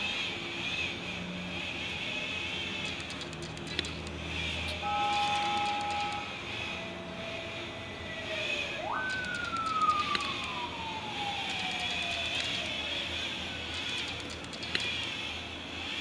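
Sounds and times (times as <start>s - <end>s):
horn-like tone: 4.8s - 7.6s
siren wailing: 4.8s - 14.3s.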